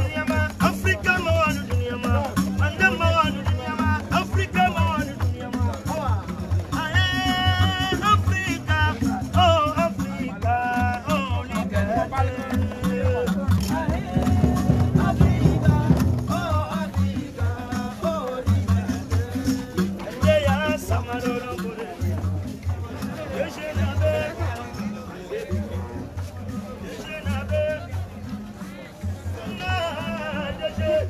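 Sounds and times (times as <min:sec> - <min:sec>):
music with low beat: 0:00.0 - 0:31.0.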